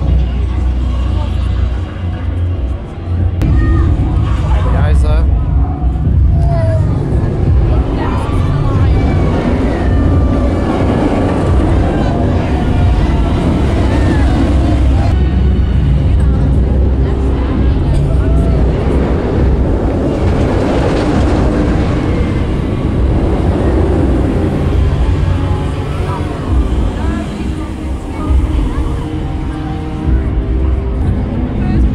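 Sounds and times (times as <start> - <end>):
roller coaster rumbling on track: 0.0 - 31.9.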